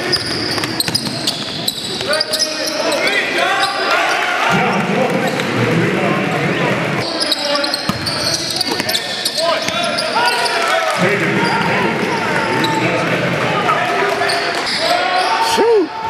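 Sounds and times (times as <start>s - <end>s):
basketball bouncing on court: 0.0s - 2.2s, 7.8s - 9.0s.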